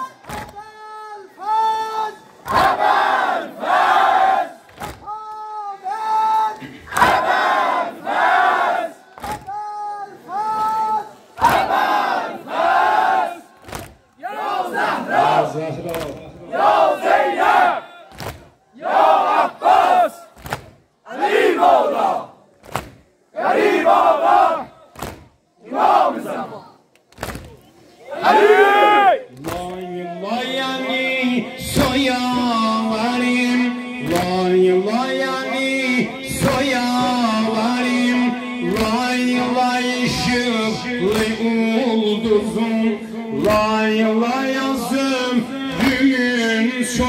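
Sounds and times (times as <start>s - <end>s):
crowd of men chanting: 1.8s - 4.7s, 6.6s - 9.4s, 11.4s - 15.6s, 16.3s - 18.2s, 18.8s - 20.4s, 21.1s - 22.4s, 23.3s - 24.9s, 25.6s - 26.8s, 28.1s - 47.0s.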